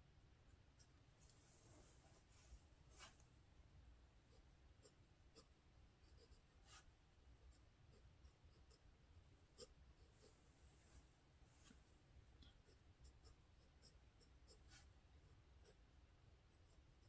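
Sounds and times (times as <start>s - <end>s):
pen scratching on paper: 4.2s - 10.5s, 12.5s - 15.9s, 16.5s - 17.0s.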